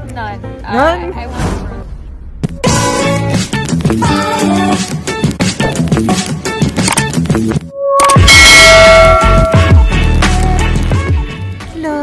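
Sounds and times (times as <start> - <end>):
electronic music: 2.6 - 11.5
bright bell-like chime: 8.3 - 9.8.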